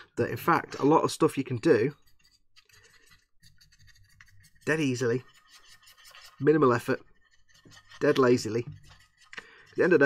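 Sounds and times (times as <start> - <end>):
paintbrush scratching on plastic: 0.6 - 10.0.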